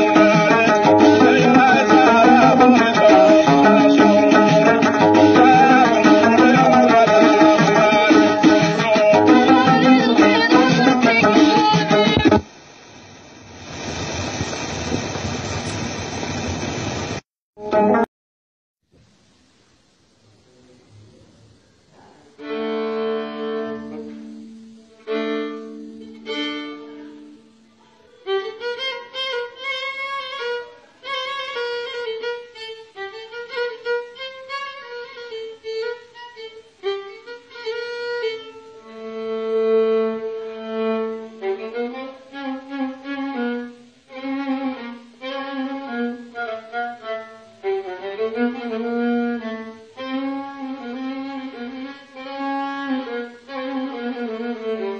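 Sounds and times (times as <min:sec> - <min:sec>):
violin melody: 0:00.0 - 0:12.4, 0:22.4 - 0:54.9.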